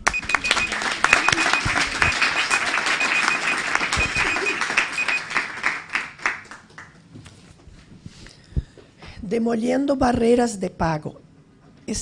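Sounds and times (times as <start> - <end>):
electronic timer beeping: 0.0 - 5.3
audience applauding: 0.0 - 7.1.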